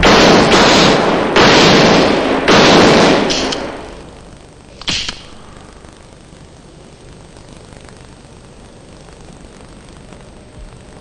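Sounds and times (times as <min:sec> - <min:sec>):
pistol shots: 0:00.0 - 0:04.1, 0:04.8 - 0:05.5.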